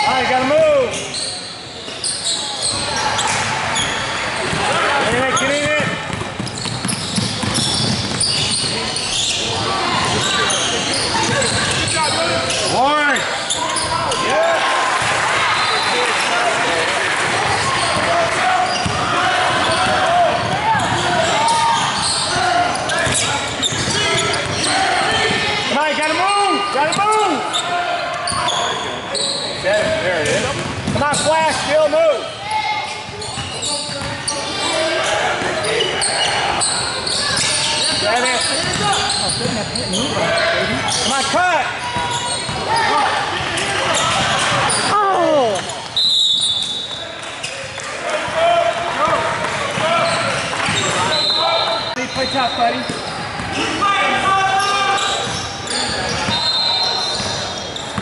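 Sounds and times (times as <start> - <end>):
basketball dribbling on hardwood: 5.8 - 8.2.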